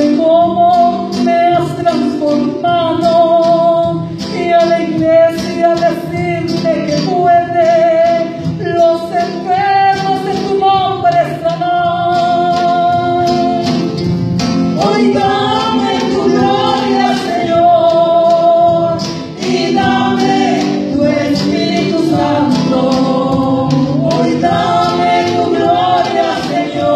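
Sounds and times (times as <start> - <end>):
band with drums and cymbals: 0.0 - 26.9
voices singing worship song: 0.0 - 26.9.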